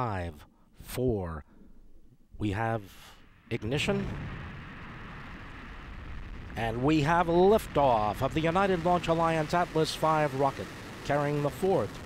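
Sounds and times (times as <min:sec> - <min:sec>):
rocket engine roaring: 0:03.1 - 0:12.0.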